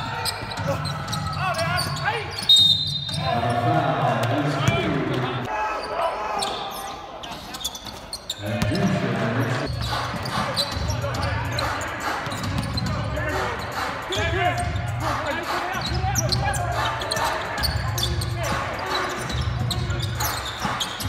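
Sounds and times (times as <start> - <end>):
players shouting: 0.0 - 2.5.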